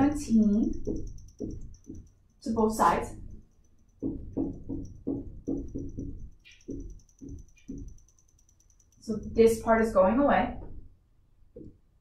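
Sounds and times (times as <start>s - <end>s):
marker knocking on whiteboard: 0.5s - 2.2s, 3.9s - 8.1s, 11.6s - 11.8s.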